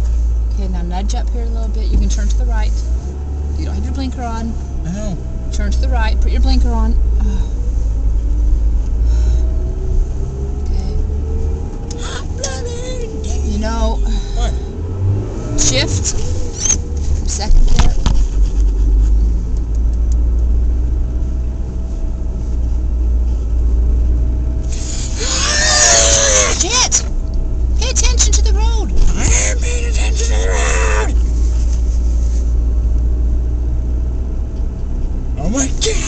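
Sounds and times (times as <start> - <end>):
car engine and road rumble: 0.0 - 36.0
loud voices: 24.7 - 27.1, 28.5 - 31.2.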